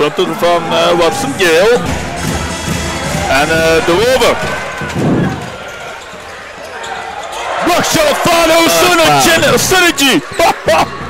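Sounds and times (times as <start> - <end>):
crowd murmuring: 0.0 - 11.0.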